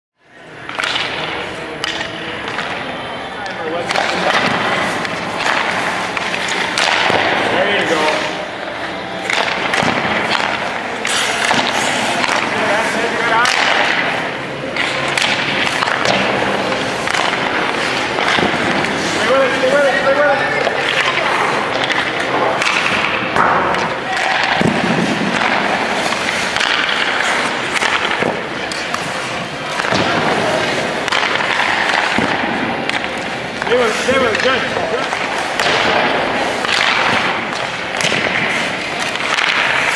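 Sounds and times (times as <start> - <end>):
indistinct voices: 0.3 - 39.9
pucks knocking off sticks and boards: 0.6 - 3.0, 3.6 - 39.9
skate blades scraping ice: 3.7 - 39.9.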